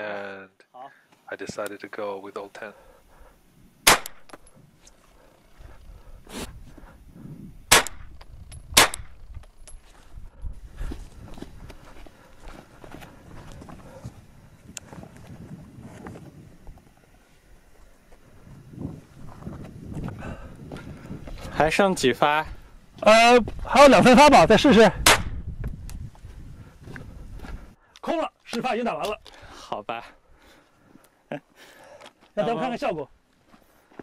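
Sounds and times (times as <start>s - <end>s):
gunshots: 3.8s - 4.3s, 7.7s - 8.1s, 8.8s - 9.2s, 25.0s - 25.3s
footsteps on gravel: 9.4s - 16.8s, 18.9s - 21.7s, 23.0s - 23.8s.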